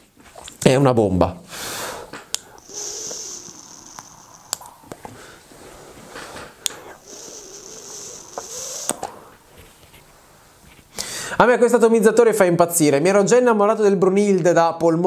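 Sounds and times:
airy hiss of vape draw: 0:01.5 - 0:11.0
vapour breathed out: 0:01.5 - 0:11.4
sharp clicks: 0:02.1 - 0:05.2, 0:06.6 - 0:09.2.

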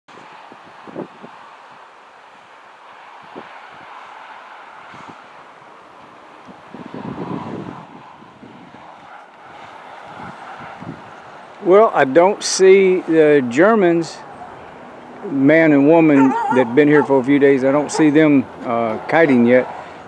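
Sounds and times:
wind buffeting microphone: 0:00.1 - 0:01.8, 0:06.3 - 0:12.3, 0:14.4 - 0:20.0
steady outdoor hiss: 0:00.1 - 0:20.0.

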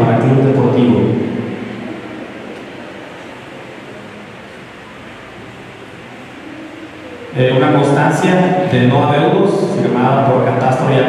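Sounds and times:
room noise hiss: 0:00.0 - 0:11.0
man's voice: 0:07.4 - 0:11.0.

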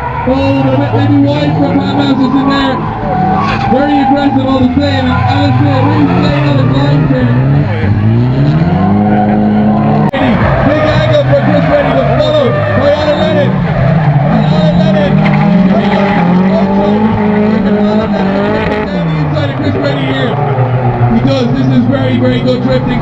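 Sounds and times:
car engines revving: 0:00.0 - 0:23.0
tyres skidding and squealing: 0:00.0 - 0:23.0.

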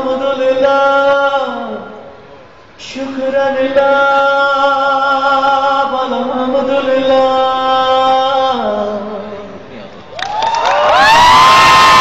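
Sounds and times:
crowd cheering and screaming: 0:10.2 - 0:12.0.

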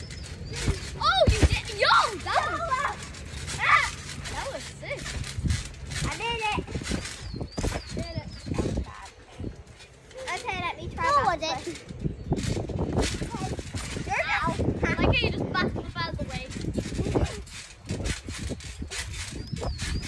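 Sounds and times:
thumps on trampoline mat: 0:00.5 - 0:01.8
young people squealing and laughing: 0:00.8 - 0:04.1.

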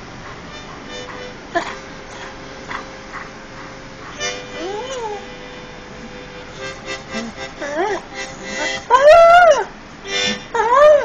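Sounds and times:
dog howling: 0:04.6 - 0:05.3, 0:08.6 - 0:09.7, 0:10.5 - 0:11.0.

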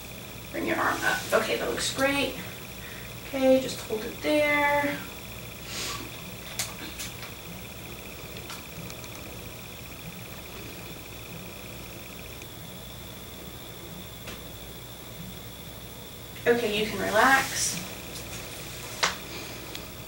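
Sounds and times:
faint high whine: 0:00.0 - 0:20.0
low hum: 0:00.0 - 0:20.0
steady hiss: 0:00.0 - 0:20.0.

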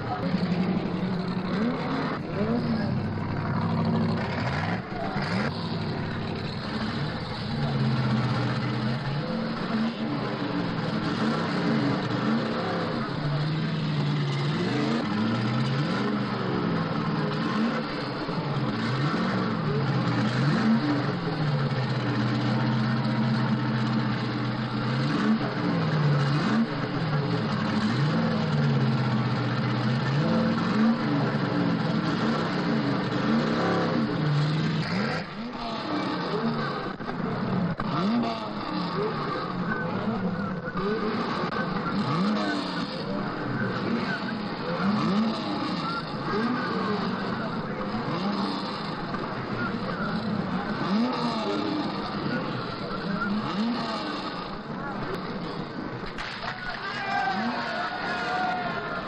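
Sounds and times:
racing engines revving: 0:00.0 - 0:59.0.

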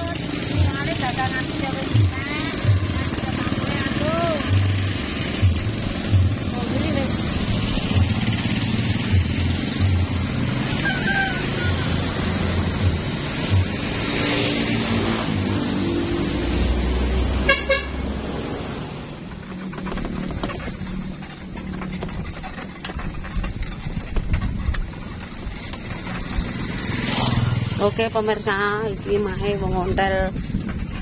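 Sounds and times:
motorcycles passing: 0:00.0 - 0:31.0
road noise: 0:00.0 - 0:31.0
horn toot: 0:10.7 - 0:12.0, 0:17.4 - 0:18.1
wind buffeting microphone: 0:22.0 - 0:31.0.

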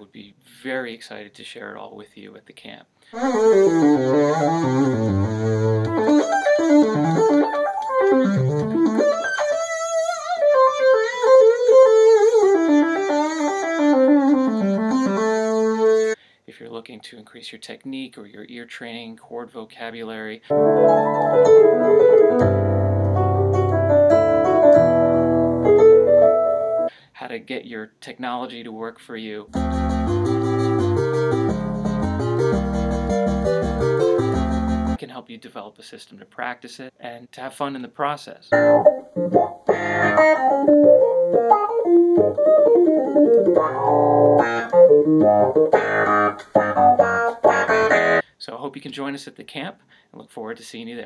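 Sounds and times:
electric keyboard chords: 0:03.2 - 0:16.2, 0:20.5 - 0:26.9, 0:29.5 - 0:35.0, 0:38.5 - 0:48.2
low bass notes: 0:20.5 - 0:26.6, 0:29.5 - 0:35.0, 0:39.7 - 0:40.4, 0:43.3 - 0:48.2.

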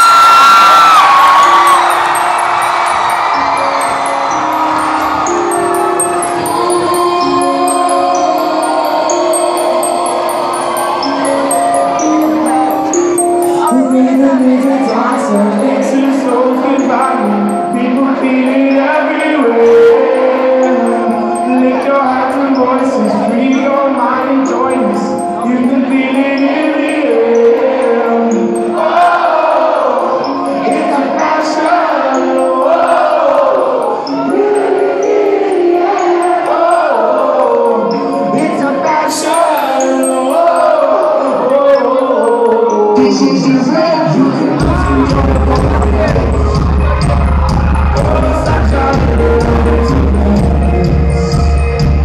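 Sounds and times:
crowd shouting and singing along: 0:00.0 - 0:52.0
high chiming notes: 0:00.0 - 0:52.0
sustained keyboard chords: 0:00.9 - 0:52.0
live rock band music: 0:44.5 - 0:52.0.

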